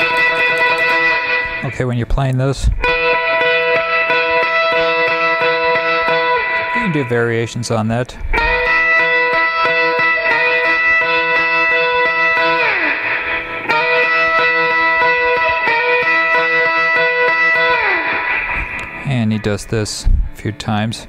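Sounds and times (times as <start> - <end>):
surf electric guitar tremolo picking: 0.0 - 20.5.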